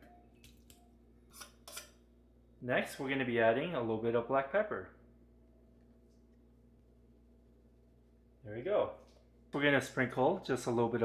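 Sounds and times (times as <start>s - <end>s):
metal spoon scraping can: 1.3s - 2.0s.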